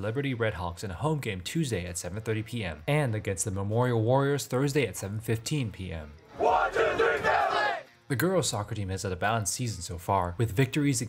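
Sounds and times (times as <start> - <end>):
team shouting together: 6.4 - 7.9.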